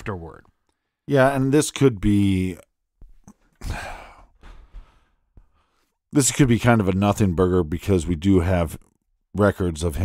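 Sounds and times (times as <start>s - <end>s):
man sighing: 3.2s - 5.1s.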